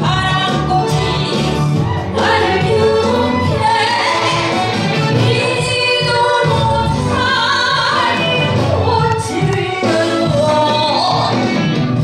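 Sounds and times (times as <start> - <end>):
woman singing into a microphone: 0.0 - 4.6, 5.2 - 11.6.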